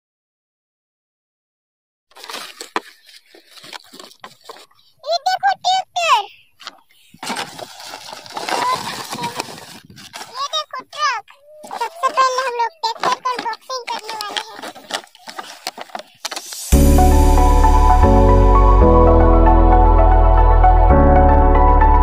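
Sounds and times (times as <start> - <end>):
cardboard parcel tearing: 2.1 - 4.9, 6.6 - 17.4
plastic packs crinkling: 2.1 - 16.8
child's voice: 5.0 - 6.5, 8.4 - 14.9.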